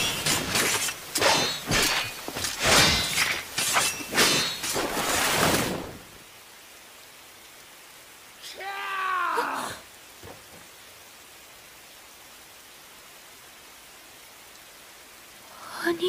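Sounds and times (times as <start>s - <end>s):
rain hiss: 0.0s - 16.0s.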